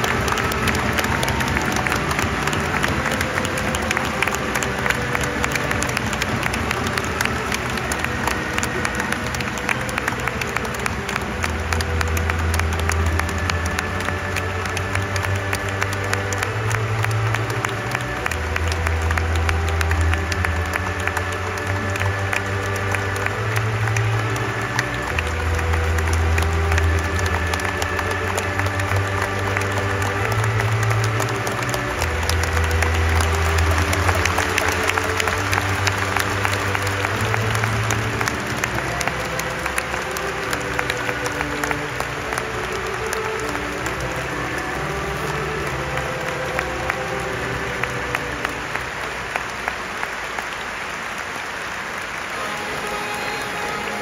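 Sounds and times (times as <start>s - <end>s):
stadium crowd applauding: 0.0s - 54.0s.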